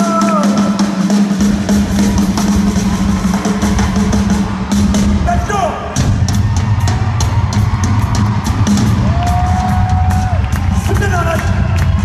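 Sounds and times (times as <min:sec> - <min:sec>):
drum solo on drums and cymbals: 0:00.0 - 0:11.6
steady bass drum: 0:00.0 - 0:12.0.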